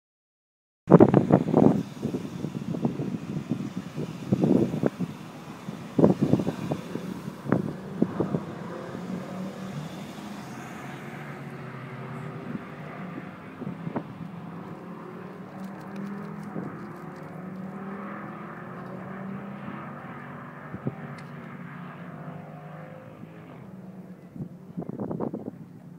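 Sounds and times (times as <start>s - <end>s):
car pulling away: 0.9s - 25.9s
sports car engines running: 0.9s - 25.9s.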